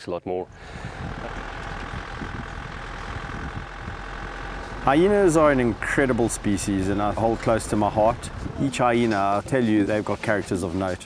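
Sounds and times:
vehicle engine running: 0.5 - 11.0.

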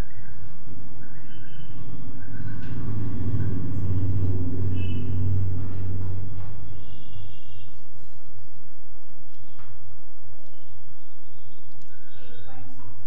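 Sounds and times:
low rumble: 0.0 - 12.1.

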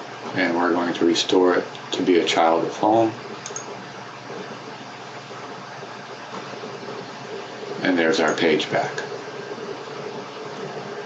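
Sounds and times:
person narrating: 7.8 - 9.1.

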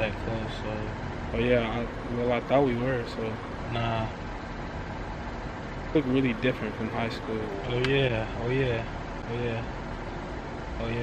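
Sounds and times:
vehicle rumble: 0.0 - 11.0.

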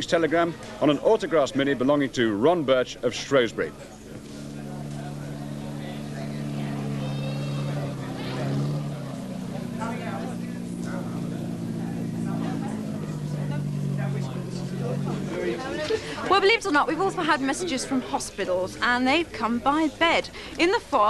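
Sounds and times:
voices: 0.0 - 21.0
car engine running: 3.4 - 17.6.

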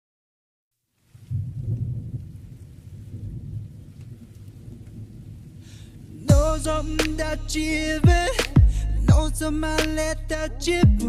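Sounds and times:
low rumble: 1.3 - 11.0.

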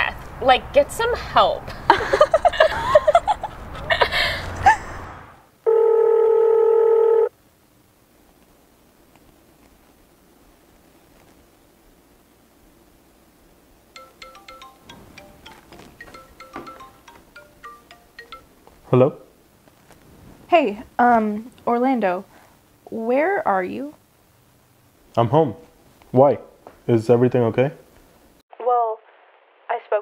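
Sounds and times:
telephone ringback tone: 5.7 - 7.3, 14.0 - 18.6.

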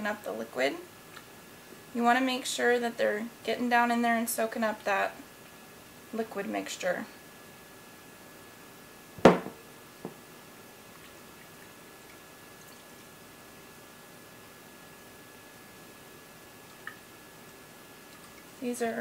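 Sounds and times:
faint high-pitched hum: 0.0 - 19.0
glass jar knock: 9.2 - 9.6.

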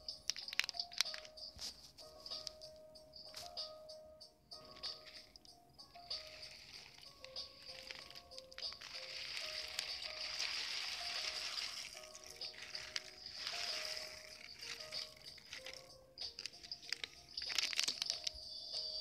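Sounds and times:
clatter of grains and plastic: 0.0 - 2.7, 4.6 - 19.0
soft background music: 0.0 - 19.0
grains pattering into water: 0.3 - 1.3, 6.1 - 18.4
plastic bag crinkling: 0.3 - 2.5, 6.2 - 18.4.

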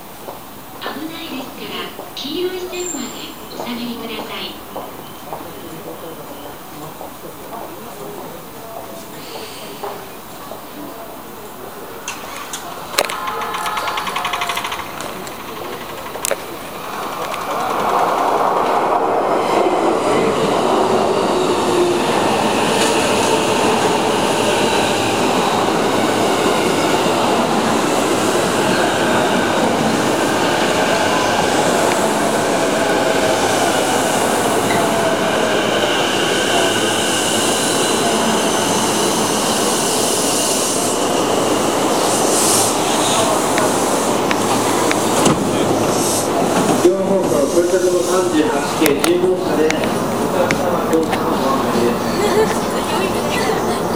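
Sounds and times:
train wheels rumbling: 11.8 - 53.9.

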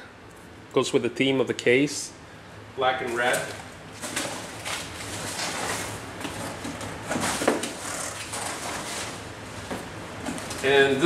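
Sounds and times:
plastic bag and cardboard rustling: 3.1 - 11.0.

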